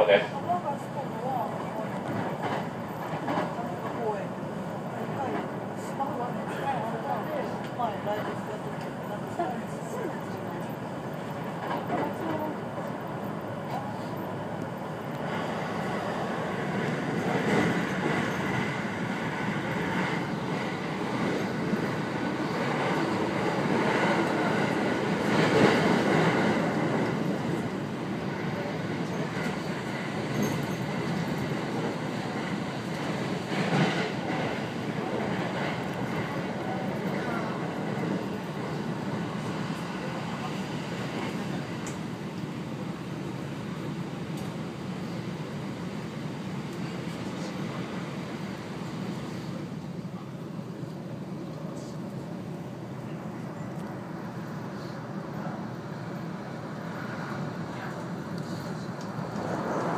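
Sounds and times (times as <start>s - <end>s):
train wheels on rails: 0.0s - 59.9s.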